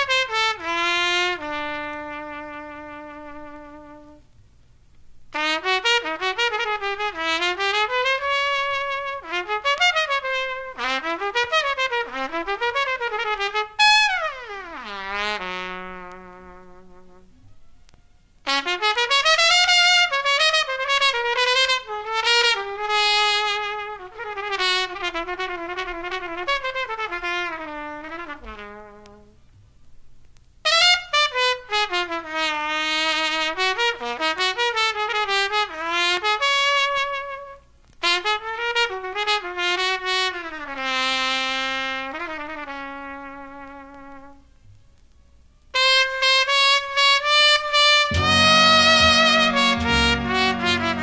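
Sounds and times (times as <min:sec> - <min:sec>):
jazz trumpet melody: 0:00.0 - 0:04.4, 0:05.3 - 0:29.4, 0:30.6 - 0:51.0.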